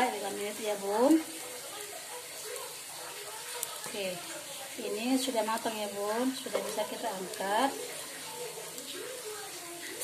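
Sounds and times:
cakes frying in a pan: 0:00.0 - 0:10.0.

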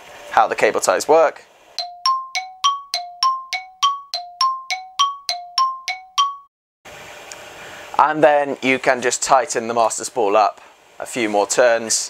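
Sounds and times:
rapid two-note chime dings: 0:01.8 - 0:06.5.

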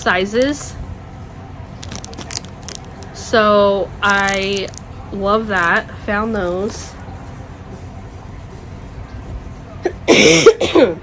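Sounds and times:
woman coughing: 0:09.9 - 0:11.0.

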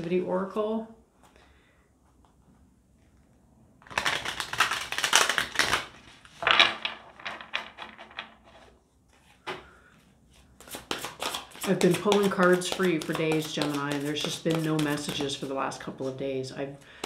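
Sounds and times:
cards being shuffled: 0:03.8 - 0:09.4, 0:10.3 - 0:16.2.

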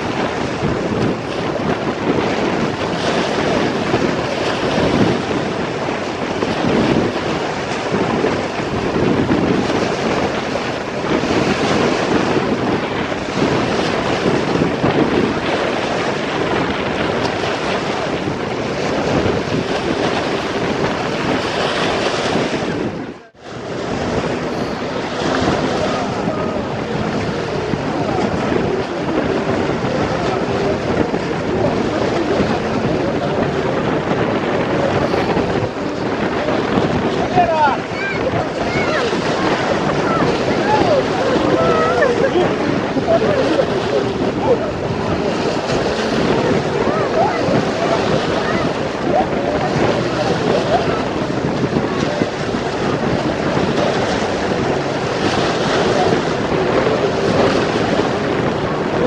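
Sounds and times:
river waves splashing on shore: 0:00.0 - 0:59.0
wind buffeting microphone: 0:00.0 - 0:59.0.

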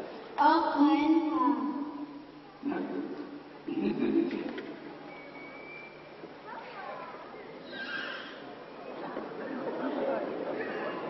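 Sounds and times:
whistled bird-like calls: 0:05.1 - 0:06.1.

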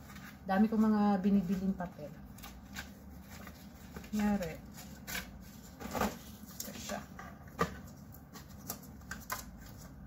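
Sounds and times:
paper sheets rustling: 0:00.0 - 0:10.0.

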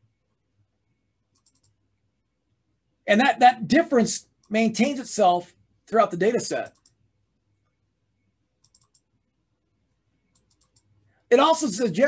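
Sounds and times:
faint computer mouse clicks: 0:01.3 - 0:01.8, 0:06.7 - 0:07.0, 0:08.6 - 0:09.1, 0:10.3 - 0:10.9.

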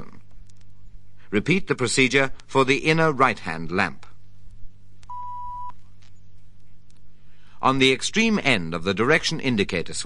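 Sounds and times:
low steady hum: 0:00.0 - 0:10.0
short electronic beep: 0:05.1 - 0:05.8.

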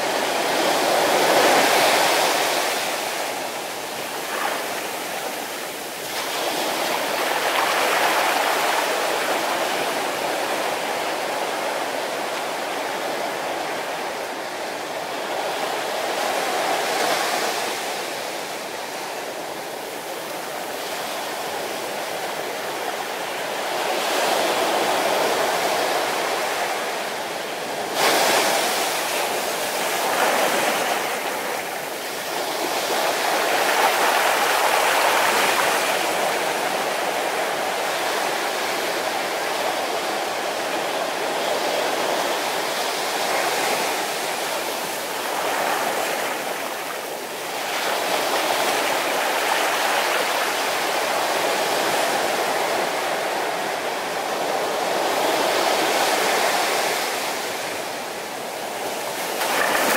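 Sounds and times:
small waves breaking on beach: 0:00.0 - 0:59.9.

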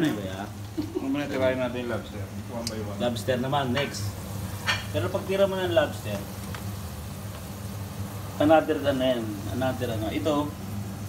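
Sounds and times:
food sizzling in hot oil: 0:00.0 - 0:11.0
steady low hum: 0:00.0 - 0:11.0.

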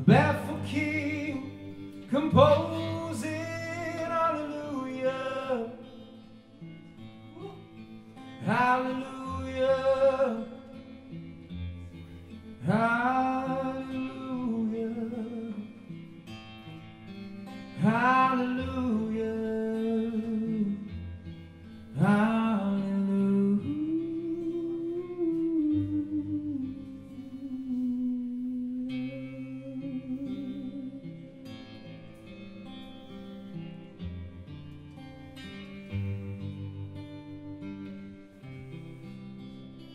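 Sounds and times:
bass: 0:00.0 - 0:04.9
man singing: 0:00.0 - 0:06.2, 0:07.3 - 0:11.0, 0:12.6 - 0:16.0, 0:17.7 - 0:21.0, 0:21.9 - 0:31.5
acoustic guitar: 0:00.0 - 0:39.9.

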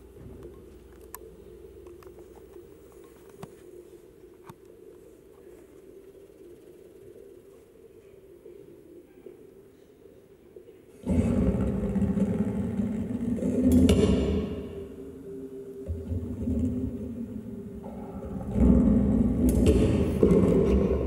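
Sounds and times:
rumbling low drone: 0:11.0 - 0:21.0.

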